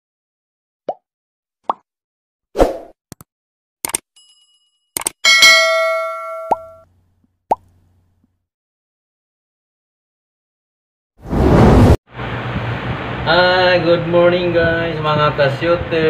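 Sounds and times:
quick clicks: 0:03.1 - 0:04.1, 0:05.0 - 0:05.2
bright bell-like ding: 0:04.2 - 0:06.8.

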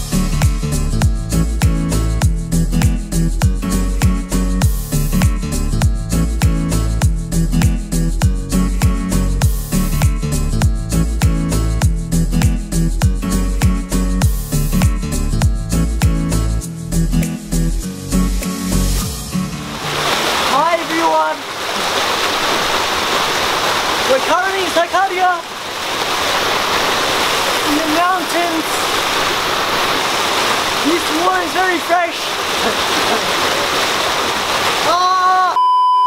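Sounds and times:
music with steady beat: 0:00.0 - 0:19.6
rushing stream water: 0:18.6 - 0:35.6.

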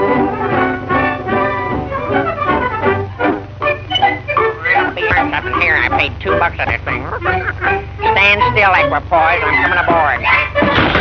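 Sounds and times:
orchestral cartoon music with brass: 0:00.0 - 0:04.6.

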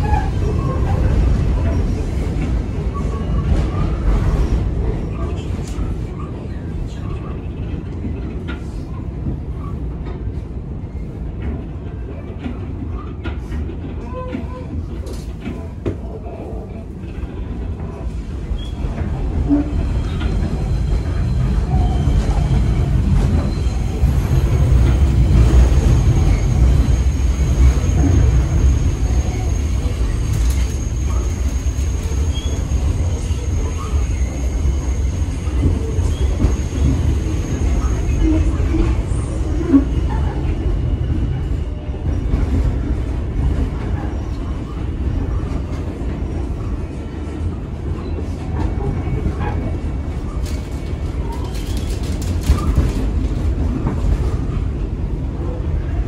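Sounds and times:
subway car wheels rumbling: 0:00.0 - 0:56.0.

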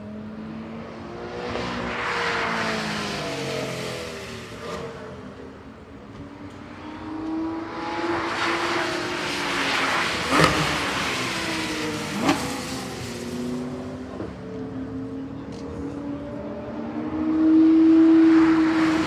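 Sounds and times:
race car engines passing: 0:00.0 - 0:19.0.

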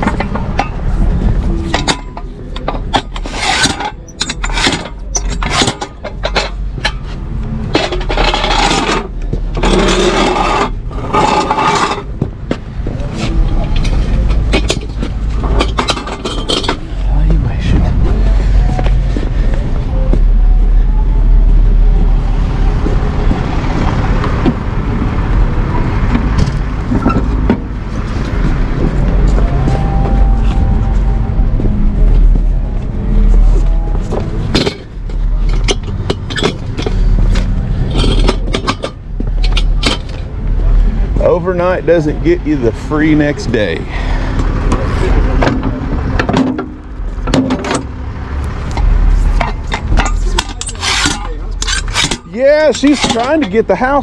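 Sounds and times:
steady low rumble: 0:00.0 - 0:52.8
metal tow gear clanking and scraping: 0:00.0 - 0:54.0.

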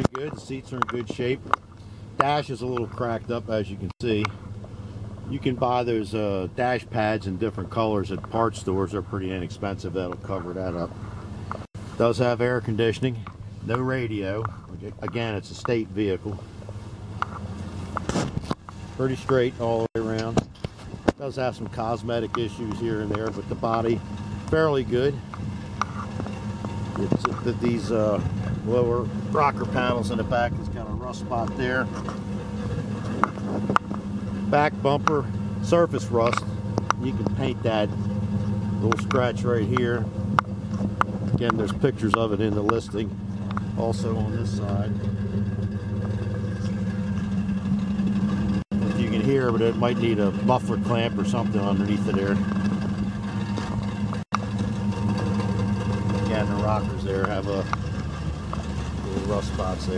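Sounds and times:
truck engine idling: 0:00.0 - 0:59.9.

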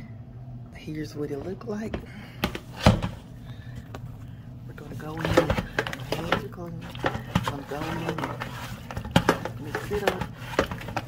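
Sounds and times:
hands mixing meat in a bowl: 0:04.7 - 0:11.0.

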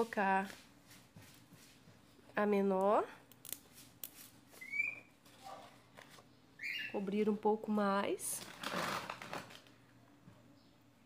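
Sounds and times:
rustling of potting soil: 0:00.0 - 0:02.8, 0:03.5 - 0:06.3.

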